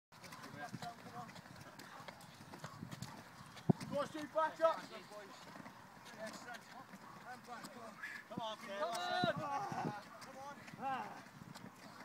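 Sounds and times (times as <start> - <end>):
feet landing on concrete steps: 0.1 - 12.0
faint voices calling: 0.2 - 12.0.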